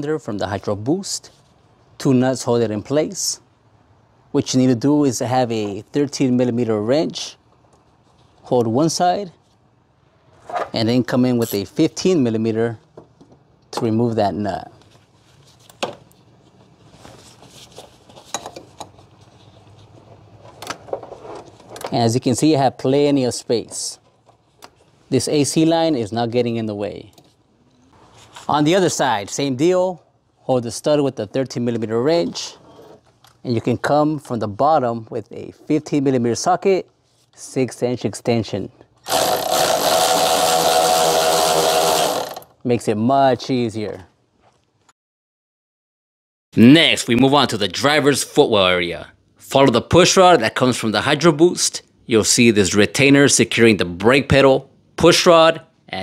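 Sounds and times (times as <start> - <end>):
power tool motor running: 39.1 - 42.5.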